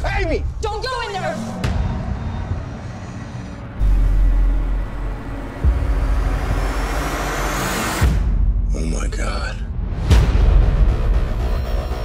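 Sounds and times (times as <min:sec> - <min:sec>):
hissing riser: 0:01.1 - 0:08.2
low rumbling drone: 0:01.2 - 0:09.0.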